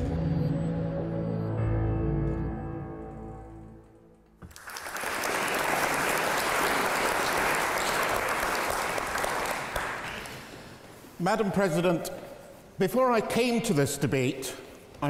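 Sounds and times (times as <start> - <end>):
audience applauding: 4.4 - 10.6.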